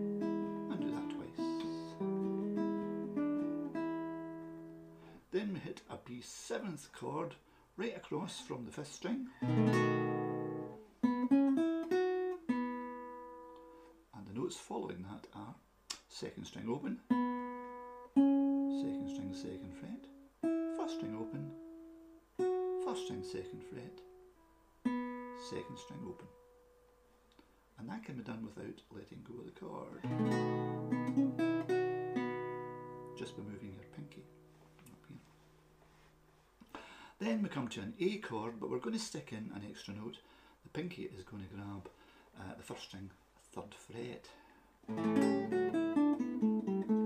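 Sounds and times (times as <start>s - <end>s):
plucked acoustic guitar notes: 0.0s - 5.1s, 9.3s - 13.8s, 17.0s - 26.8s, 30.0s - 35.3s, 44.9s - 47.0s.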